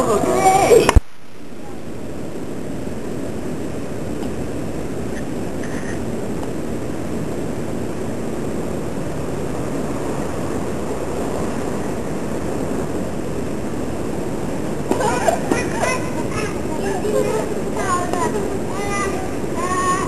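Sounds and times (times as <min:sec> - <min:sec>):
street ambience rumble: 0:00.0 - 0:20.0.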